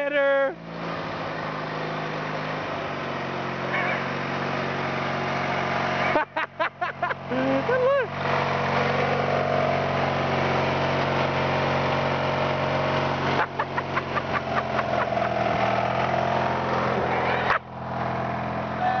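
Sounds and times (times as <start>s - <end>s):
lawn mower engine running: 0.0s - 19.0s.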